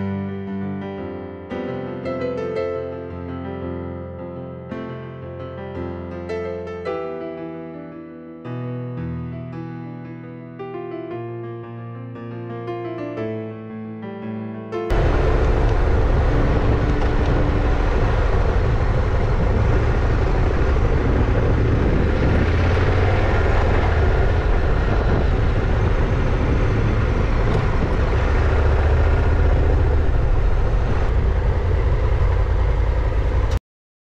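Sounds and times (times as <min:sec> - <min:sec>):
motorcycle engine: 0:14.9 - 0:33.6
wind noise: 0:14.9 - 0:33.6.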